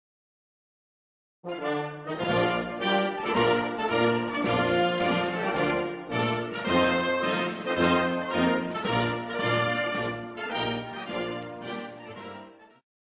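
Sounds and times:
orchestral music led by brass: 1.4 - 12.8.

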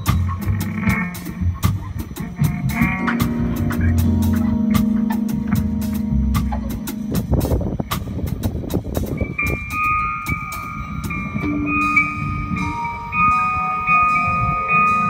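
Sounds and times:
drums and cymbal crashes: 0.0 - 15.0
jazz-rock band playing: 0.0 - 15.0.

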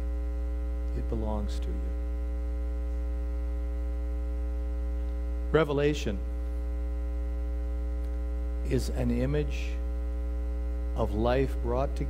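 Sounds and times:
electrical mains hum: 0.0 - 12.0
person speaking: 0.9 - 2.1, 8.6 - 9.8.

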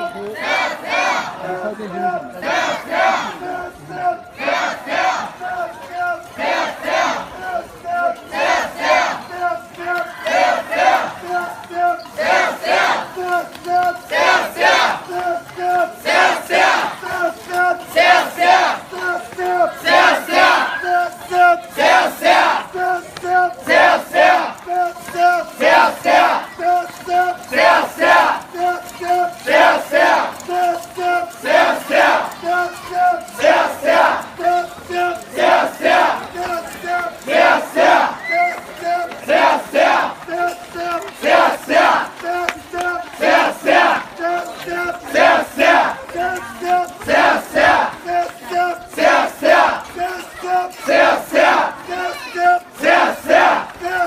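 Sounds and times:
group chanting in rhythm: 0.4 - 1.4, 2.4 - 5.6, 6.4 - 11.5, 12.2 - 13.4, 14.1 - 20.7, 21.7 - 24.6, 25.3 - 26.8, 29.2 - 32.6, 33.4 - 38.2, 39.2 - 54.0.

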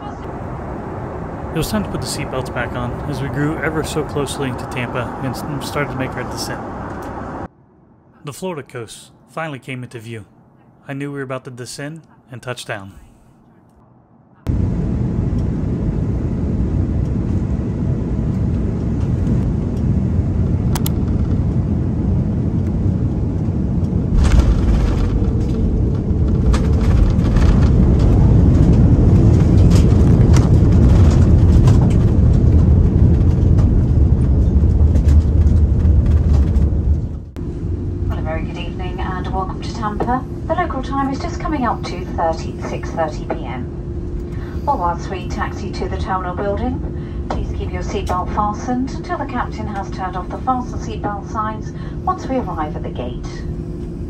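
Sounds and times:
airliner cabin rumble: 0.0 - 8.2, 14.4 - 54.0
person speaking: 8.2 - 13.3, 38.1 - 43.7.

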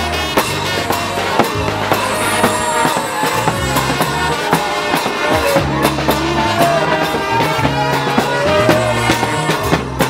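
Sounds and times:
bass drum: 0.0 - 10.0
brass band horns: 0.0 - 10.0.

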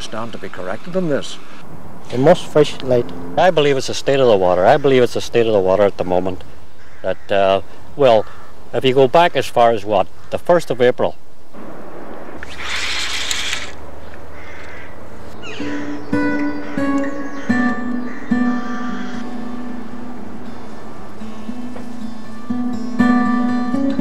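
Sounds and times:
acoustic guitar music: 15.4 - 24.0.

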